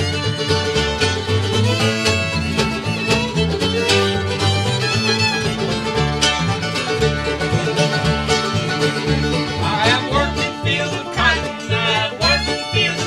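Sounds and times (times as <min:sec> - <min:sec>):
bluegrass band playing: 0:00.0 - 0:13.0.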